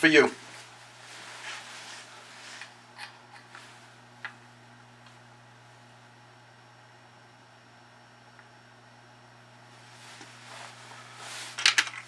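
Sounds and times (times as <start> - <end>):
steady low hum: 0.0 - 12.0
soft handling clicks and rustles: 9.8 - 12.0.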